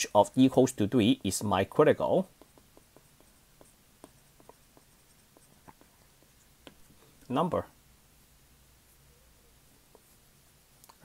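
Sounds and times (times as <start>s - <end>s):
stylus clicking on tablet screen: 2.2s - 7.3s.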